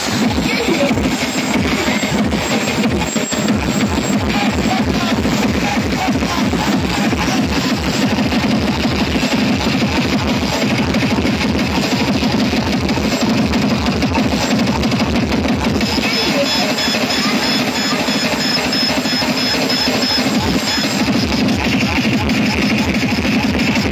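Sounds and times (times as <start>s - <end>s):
repeating high-pitched tone: 0.0s - 9.4s, 15.8s - 21.9s
electronic dance music over speakers: 0.0s - 23.9s.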